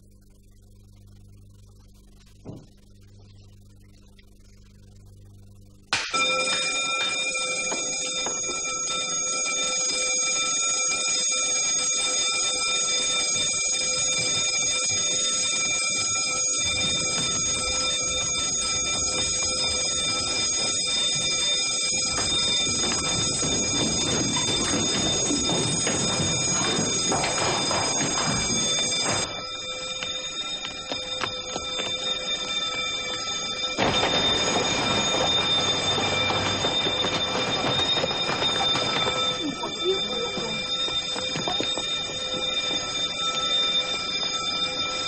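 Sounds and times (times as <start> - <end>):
fire alarm bell ringing: 5.9 - 45.0.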